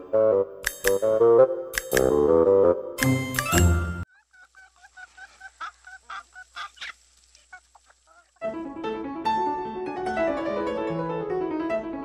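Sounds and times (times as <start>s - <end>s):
chicken clucking: 4.1s - 8.4s.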